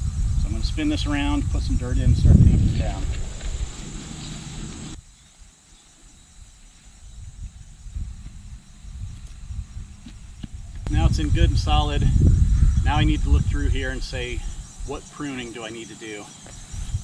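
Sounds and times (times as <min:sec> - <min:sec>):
insect chirr: 0:00.0 - 0:17.0.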